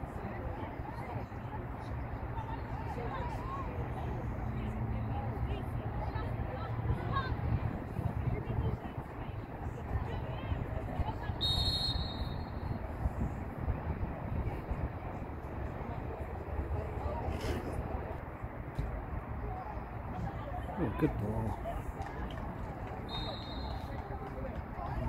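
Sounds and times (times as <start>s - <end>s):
faint distant voices: 0.0s - 25.0s
whistle blast: 11.4s - 12.7s, 23.1s - 23.9s.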